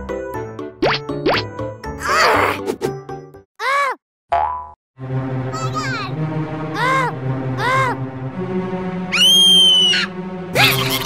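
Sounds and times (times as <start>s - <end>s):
background music: 0.0s - 3.4s, 5.0s - 11.0s
cartoon falling pitch effect: 9.1s - 11.0s.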